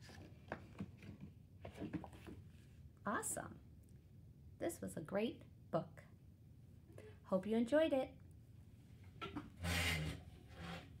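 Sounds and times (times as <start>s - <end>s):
rubbing scrape: 9.6s - 11.0s.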